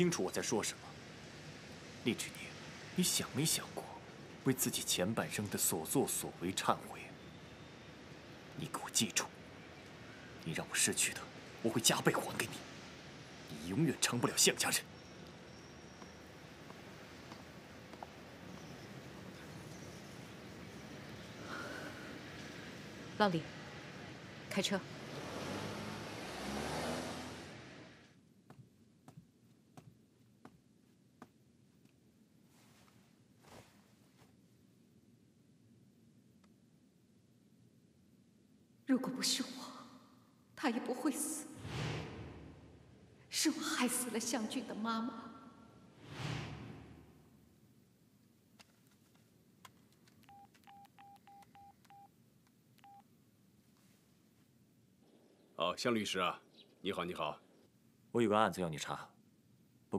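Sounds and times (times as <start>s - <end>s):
car pulling away: 23.9s - 28.2s
phone keypad beeps: 50.3s - 52.1s, 52.8s - 53.0s.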